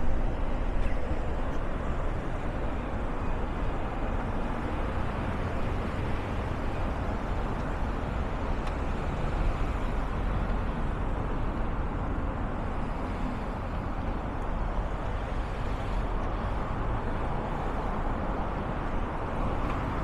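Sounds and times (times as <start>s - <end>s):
cars driving on street: 0.0s - 20.0s.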